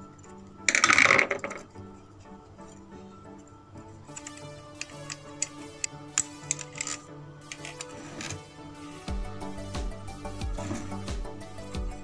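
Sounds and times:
background music: 0.0 - 12.0
sharp metallic clicks and taps: 4.1 - 8.4.

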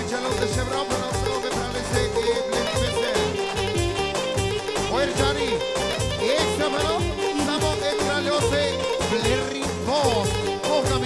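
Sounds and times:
folk dance music: 0.0 - 11.0.

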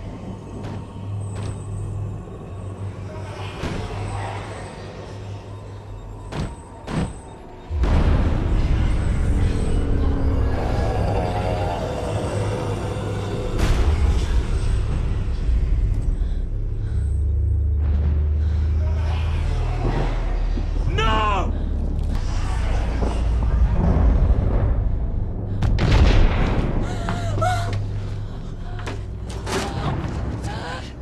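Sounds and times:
low droning horror score: 0.0 - 31.0.

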